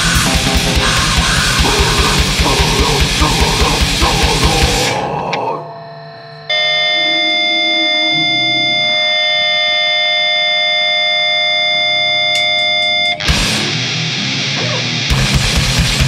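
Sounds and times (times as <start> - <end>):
band with drums: 0.0 - 4.8, 15.1 - 16.0
distorted electric guitar chord: 0.0 - 16.0.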